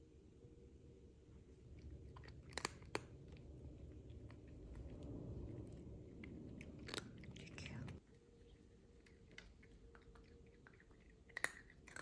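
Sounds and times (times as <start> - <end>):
cat crunching dry kibble: 1.5 - 12.0.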